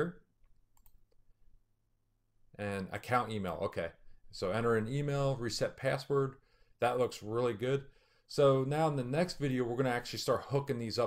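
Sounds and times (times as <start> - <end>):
computer mouse clicks: 0.4 - 1.3.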